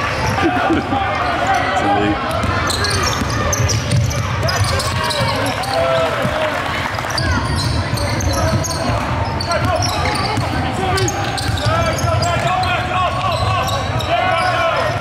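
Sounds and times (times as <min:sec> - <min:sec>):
players calling out: 0:00.0 - 0:15.0
sneakers squeaking on floor: 0:01.2 - 0:06.4, 0:07.1 - 0:15.0.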